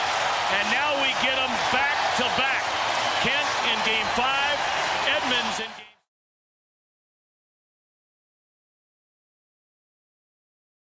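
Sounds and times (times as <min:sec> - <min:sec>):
stadium crowd cheering: 0:00.0 - 0:06.1.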